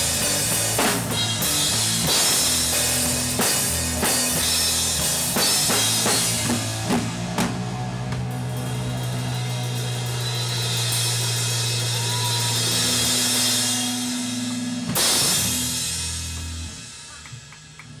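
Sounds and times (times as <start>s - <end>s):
loud band hit: 0.0s - 16.8s
heavy rock band chord: 0.0s - 17.0s.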